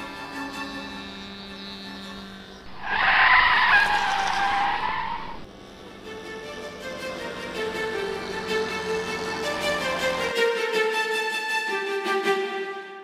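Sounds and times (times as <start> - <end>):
model aeroplane engine passing: 0.0 - 10.4
background music: 5.9 - 13.0.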